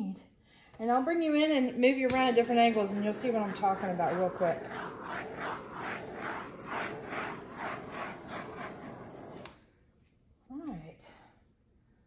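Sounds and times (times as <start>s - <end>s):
torch click: 2.0s - 9.6s
torch flame hissing: 2.0s - 9.7s.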